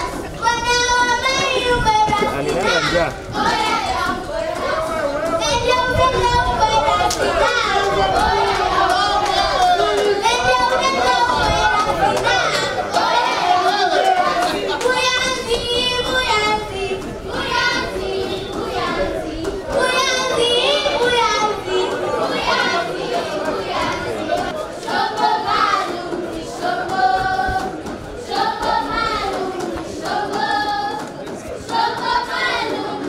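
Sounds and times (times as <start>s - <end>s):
children singing folk song: 0.0s - 33.0s.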